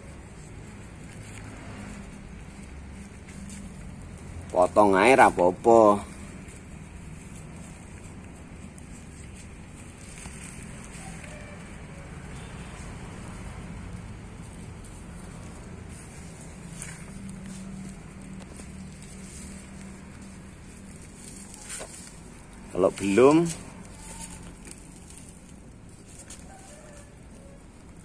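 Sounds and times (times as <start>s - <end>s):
fingers crumbling soil: 0.0s - 28.0s.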